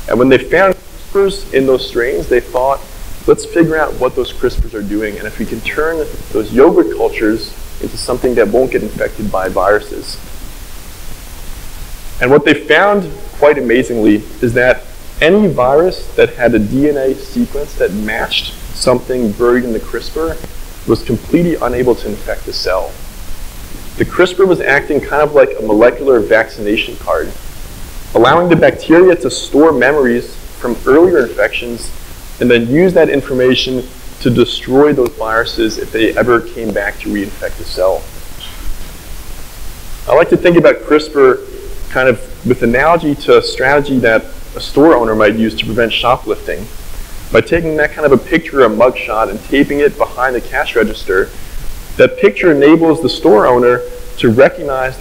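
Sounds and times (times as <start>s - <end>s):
microphone hiss: 0.0s - 55.0s.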